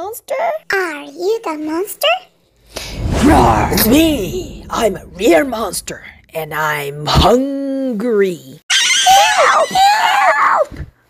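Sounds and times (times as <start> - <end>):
person screaming in fright: 8.7 - 10.6.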